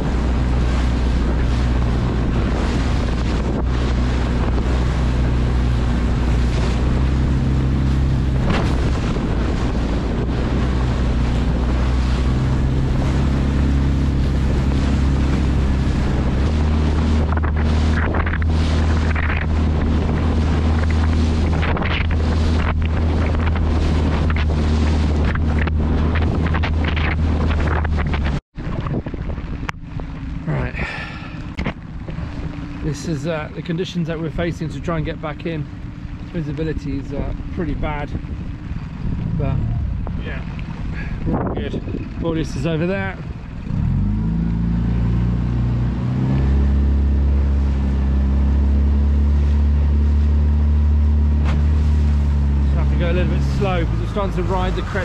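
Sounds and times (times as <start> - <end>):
outboard motor running: 0.0 - 55.0
rushing water: 0.0 - 55.0
wind buffeting on microphone: 0.0 - 55.0.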